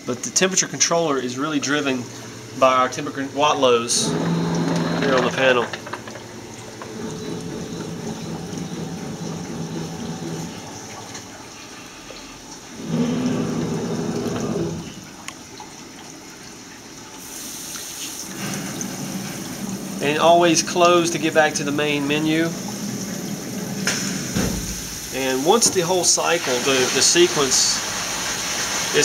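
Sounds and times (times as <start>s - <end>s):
steady machine hum: 0.0s - 15.3s, 18.2s - 29.0s
water flowing in tanks: 0.0s - 29.0s.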